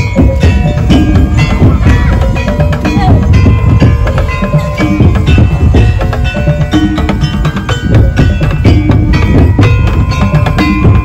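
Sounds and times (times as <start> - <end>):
drums beating: 0.0 - 11.0
ringing bell-like tones: 0.0 - 11.0.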